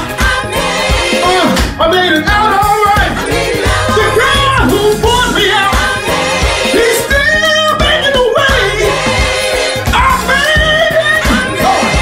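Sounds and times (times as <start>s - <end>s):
gospel choir singing: 0.0s - 12.0s
instrumental backing with beat: 0.0s - 12.0s.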